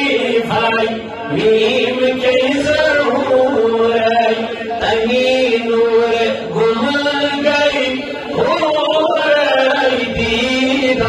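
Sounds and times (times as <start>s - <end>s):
man chanting unaccompanied: 0.0s - 11.0s.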